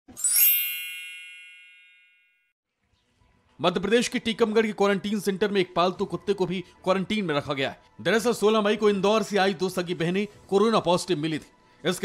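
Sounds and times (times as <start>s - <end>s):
bright electronic ding: 0.1s - 2.5s.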